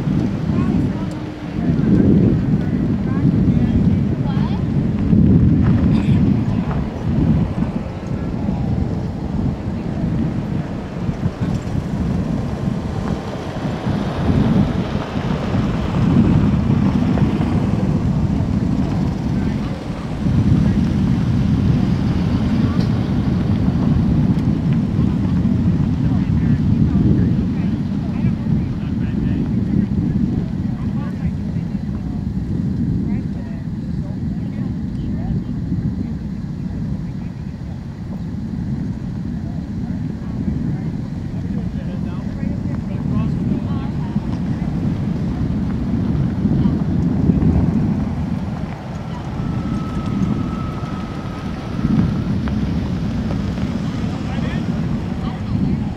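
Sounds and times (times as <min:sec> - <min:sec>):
vehicles driving slowly past: 0:00.0 - 0:32.8, 0:39.8 - 0:55.9
wind rumble on microphone: 0:00.0 - 0:55.9.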